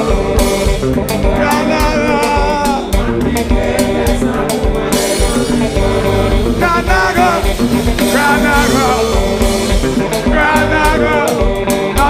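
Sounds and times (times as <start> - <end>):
conga drums: 0.0 - 12.0
gospel band playing: 0.0 - 12.0
person singing: 0.0 - 12.0.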